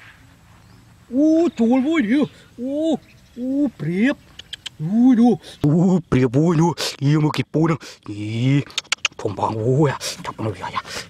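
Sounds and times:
man speaking: 1.1 - 11.0
faint clicks: 4.3 - 4.8.

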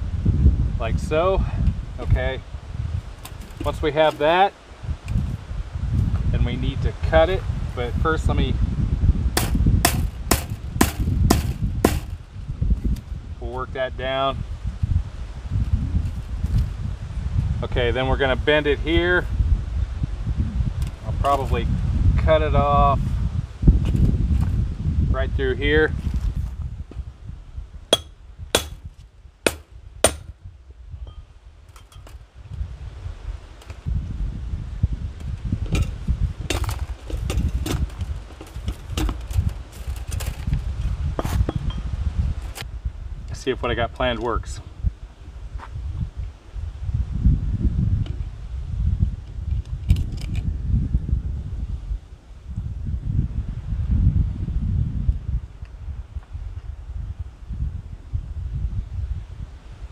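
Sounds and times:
hammer striking wire on wood: 9.4 - 12.2, 27.9 - 28.8, 29.4 - 30.3, 36.5 - 37.8.

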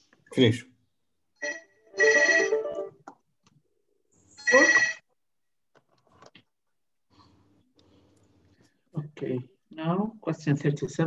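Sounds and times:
phone ringtone: 1.4 - 3.0, 4.4 - 5.0.

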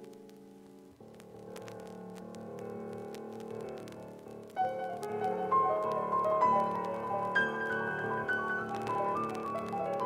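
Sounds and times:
piano chords: 4.6 - 10.0.

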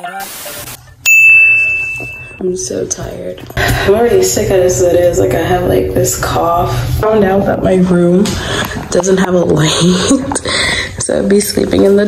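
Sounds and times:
bright bell ding: 1.0 - 2.4.

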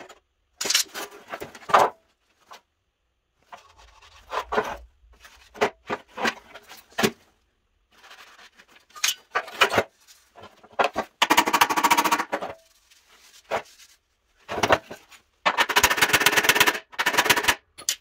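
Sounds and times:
metal scraping and handling: 0.0 - 2.6, 3.4 - 7.2, 7.9 - 11.2.

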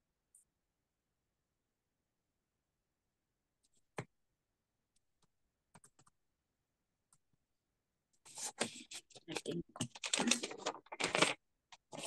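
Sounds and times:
typing on computer keyboard: 5.8 - 6.1.

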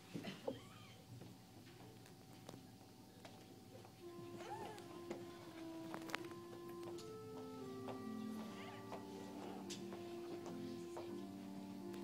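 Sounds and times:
soft organ music: 4.0 - 12.0.

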